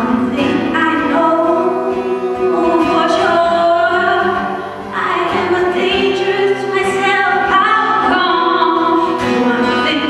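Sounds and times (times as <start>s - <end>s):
acoustic guitar: 0.0s - 10.0s
woman singing long notes: 0.0s - 10.0s.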